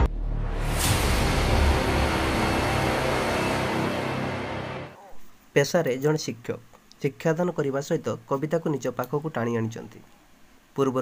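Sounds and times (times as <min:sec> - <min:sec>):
loud dense intro music: 0:00.0 - 0:05.0
low drone: 0:00.0 - 0:05.1.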